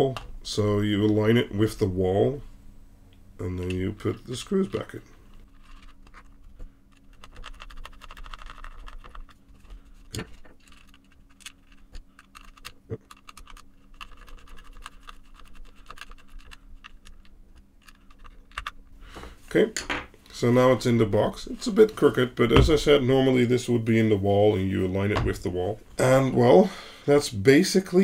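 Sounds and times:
screwdriver scratching and ticking: 5.3 - 18.8.

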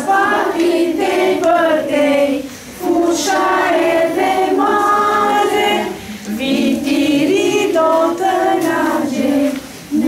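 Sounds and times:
children singing together: 0.0 - 10.0.

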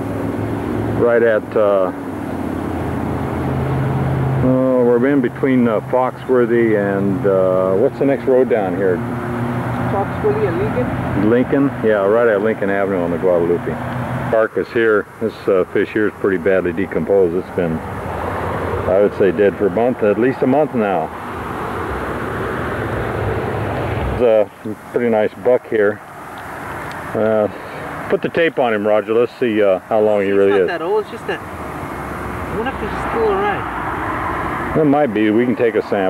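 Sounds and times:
road traffic rumble: 0.0 - 36.0
rushing outdoor noise: 0.0 - 36.0
man speaking: 1.0 - 2.0, 4.4 - 9.0, 11.2 - 17.9, 18.8 - 21.1, 24.2 - 26.0, 27.0 - 30.8, 34.8 - 36.0.

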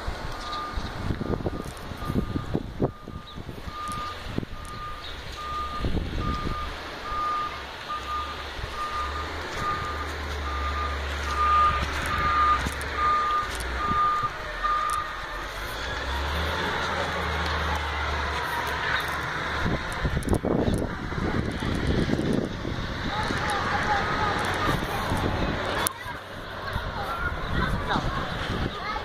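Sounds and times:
engine humming: 0.0 - 29.0
reversing alarm beeping: 0.3 - 15.2.

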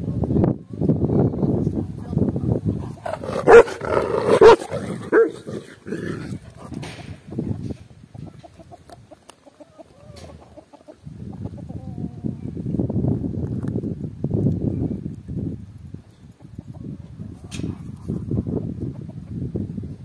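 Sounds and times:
large dog barking: 3.0 - 6.2.

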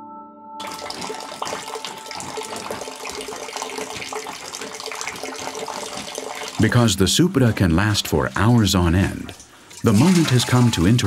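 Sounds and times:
juice pouring and splashing: 0.6 - 11.0.

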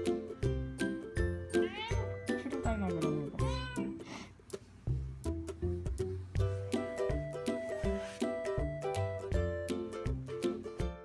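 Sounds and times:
background music: 0.0 - 11.0
cat meowing: 1.6 - 2.1, 3.4 - 4.0.

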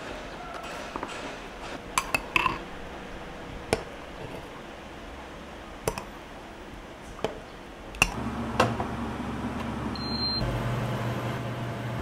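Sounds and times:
cooktop electrical hum: 0.0 - 12.0
cooktop clicks: 5.9 - 6.1.

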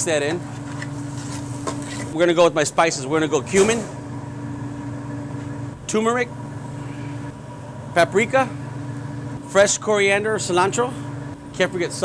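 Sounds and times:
man speaking: 0.0 - 0.4, 2.2 - 3.9, 7.9 - 8.6, 11.6 - 12.0
kitchen equipment humming: 0.0 - 12.0.

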